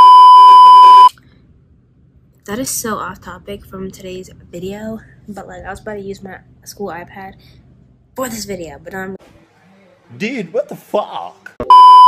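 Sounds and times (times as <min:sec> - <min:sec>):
test-tone beep: 0:00.0 - 0:01.1, 0:11.6 - 0:12.0.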